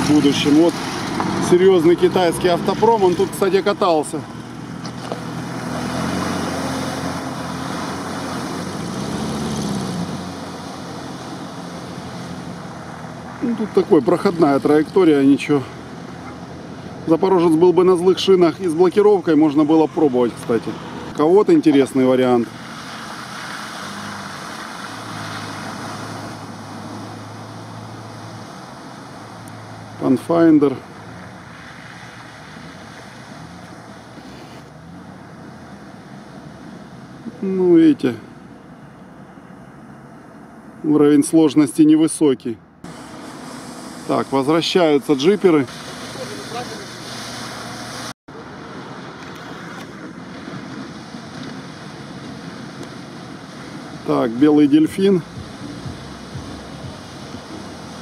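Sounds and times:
tyres splashing through water and mud: 0.0 - 38.8, 42.8 - 58.0
suv engine humming: 0.0 - 40.9, 42.6 - 58.0
wind on microphone: 55.1 - 58.0.

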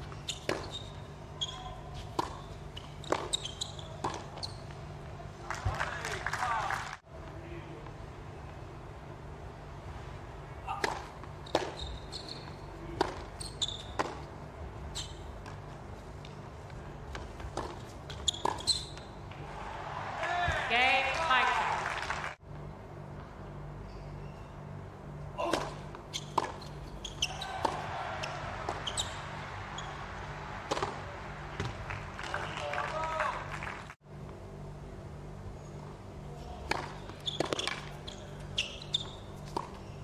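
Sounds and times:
tennis ball hit by racquets: 0.3 - 0.7, 2.0 - 3.4, 4.0 - 4.4, 10.7 - 11.8, 12.9 - 14.3, 17.1 - 19.1, 25.4 - 29.1, 30.6 - 31.9, 36.6 - 38.0, 39.5 - 39.8.

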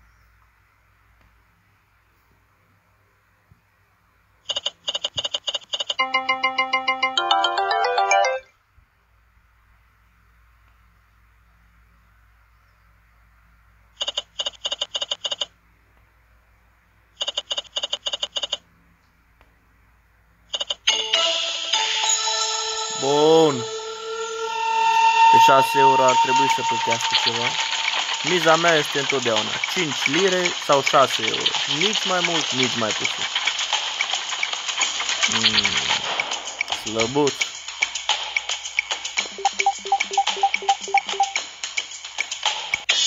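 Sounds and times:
musical fanfare with swooping tone: 6.0 - 8.5, 39.3 - 41.4
rising electronic win jingle: 6.0 - 8.5, 39.2 - 41.4
rapid electronic beeping: 25.8 - 37.5, 38.7 - 41.5.

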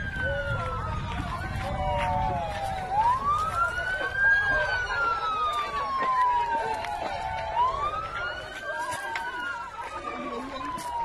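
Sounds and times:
emergency siren wailing: 0.0 - 11.0
people's voices: 0.0 - 11.0.

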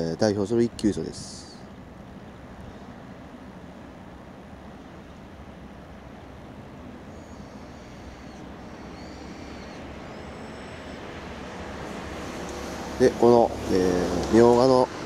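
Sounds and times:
distant road traffic: 0.0 - 15.0
thin high whistles: 7.1 - 13.0.

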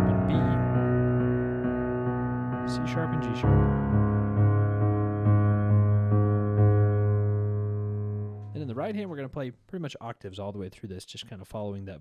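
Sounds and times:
man talking: 0.0 - 0.7, 2.7 - 3.7, 8.5 - 12.0
piano chord ringing: 0.0 - 9.1.

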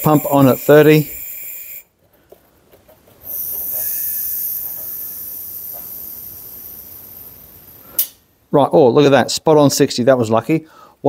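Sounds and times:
compressed air hissing: 0.0 - 1.9, 3.2 - 8.2.

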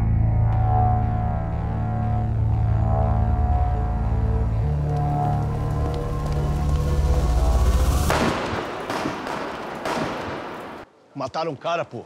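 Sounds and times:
dramatic music drone: 0.0 - 8.6
echoing gunshots: 8.1 - 10.9.

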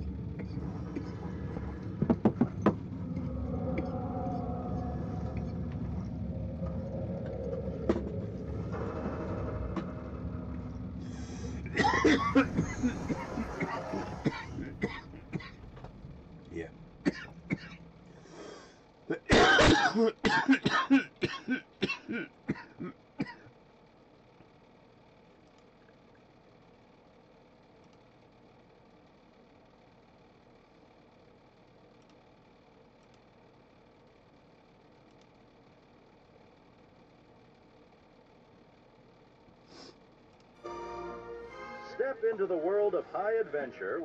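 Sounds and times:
man clearing throat: 11.6 - 15.7, 17.0 - 17.8, 19.1 - 23.4
man coughing: 11.7 - 15.7, 17.0 - 17.8, 19.1 - 23.4.

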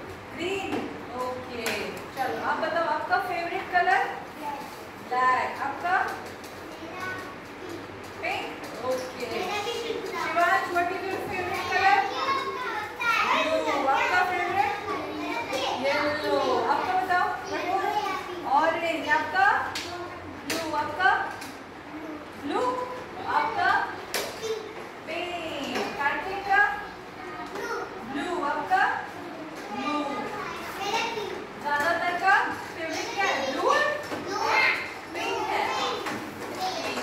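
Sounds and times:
children talking and calling out: 6.4 - 8.2, 9.2 - 20.4, 21.6 - 22.4, 23.0 - 25.0, 26.8 - 28.3, 29.1 - 31.6, 32.7 - 37.0.

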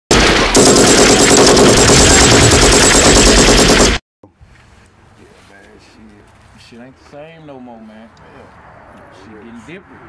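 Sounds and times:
automatic gunfire: 0.1 - 4.0.

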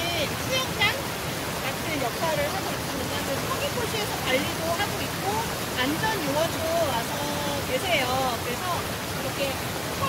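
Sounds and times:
water rushing over rocks: 0.0 - 10.0.

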